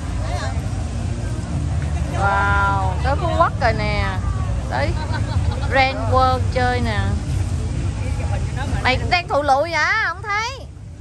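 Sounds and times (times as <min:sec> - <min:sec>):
faint crowd voices: 0:00.0 - 0:11.0
steady low rumble: 0:00.0 - 0:11.0.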